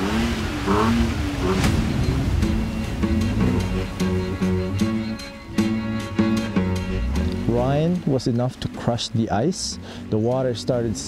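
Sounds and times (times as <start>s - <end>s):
truck engine revving: 0.0s - 11.0s
music with steady beat: 1.5s - 8.1s.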